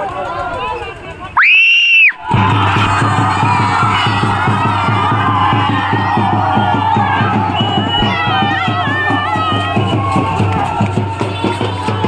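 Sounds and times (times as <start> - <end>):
crowd shouting and cheering: 0.0 - 12.0
fast steady drumming: 2.2 - 12.0.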